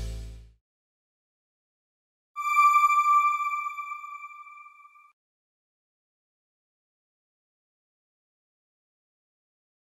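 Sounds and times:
bright electronic chime: 2.4 - 5.1.

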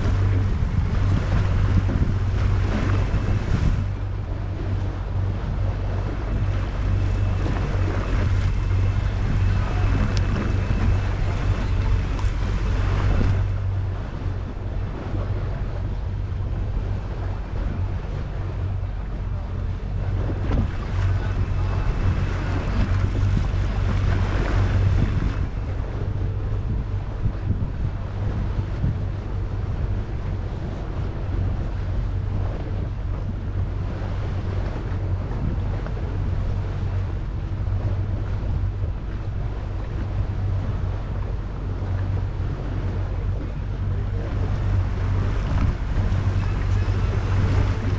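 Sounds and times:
motorboat engine running: 0.0 - 47.9
water washing along hull: 0.0 - 47.9
wind on microphone: 0.0 - 47.9.

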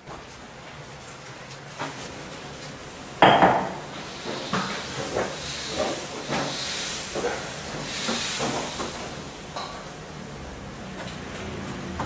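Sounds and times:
hiss: 3.6 - 10.4.

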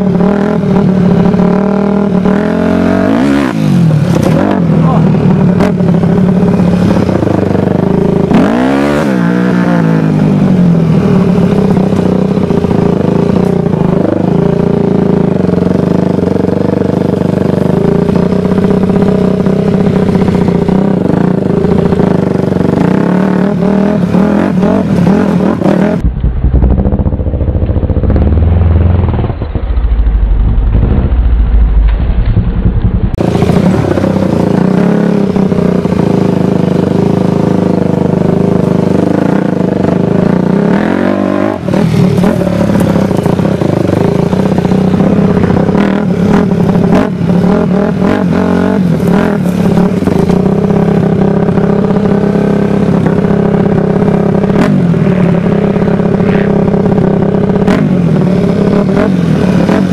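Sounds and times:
dirt bike engine running: 0.0 - 59.9
bike rattling and knocking: 26.0 - 33.2.

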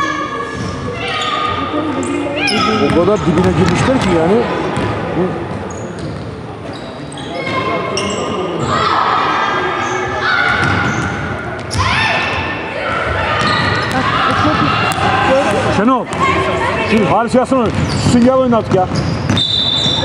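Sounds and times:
sneaker squeaks: 0.0 - 4.1, 5.5 - 8.9, 9.7 - 12.5, 13.1 - 15.0, 17.6 - 20.0.

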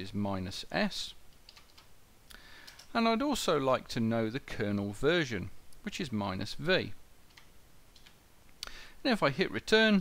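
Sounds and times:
computer keyboard keystrokes: 1.3 - 1.9, 2.6 - 2.9.

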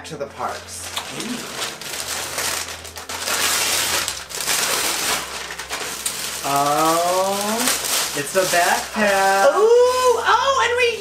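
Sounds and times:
plastic bag crinkling: 0.4 - 11.0
wrapping paper tearing: 0.4 - 11.0.

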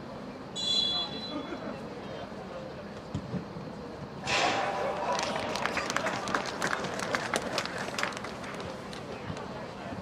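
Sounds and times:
noisy background: 0.0 - 10.0
hand claps: 5.1 - 9.5.

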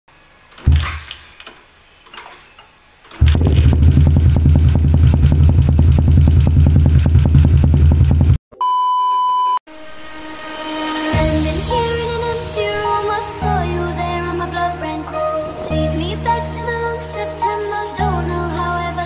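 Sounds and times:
thump and knocks: 0.6 - 1.1
motorcycle engine idling: 3.2 - 8.4.

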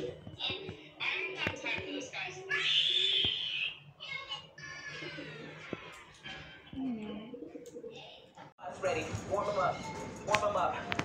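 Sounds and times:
pigeons cooing: 0.0 - 3.8, 7.0 - 8.4.

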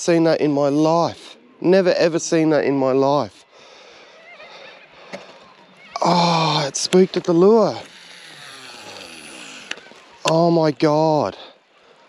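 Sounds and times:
fishing reel whirring: 5.8 - 10.5.

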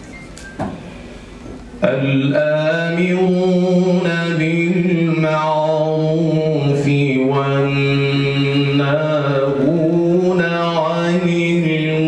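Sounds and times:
man chanting into microphone: 1.8 - 12.0.

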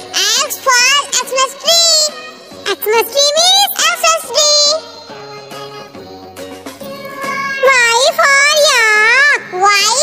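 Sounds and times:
high-pitched voice singing: 0.0 - 10.0.

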